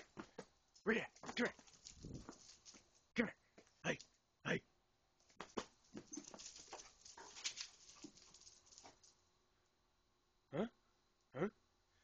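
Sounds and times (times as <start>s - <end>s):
footsteps on concrete: 0.0s - 3.8s, 5.2s - 8.2s
dog paws tapping on concrete: 0.0s - 4.2s, 5.2s - 9.2s.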